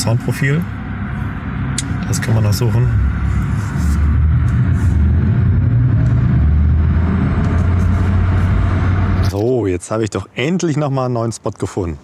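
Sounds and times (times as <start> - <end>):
car cabin road noise rumble: 0.0 - 9.7.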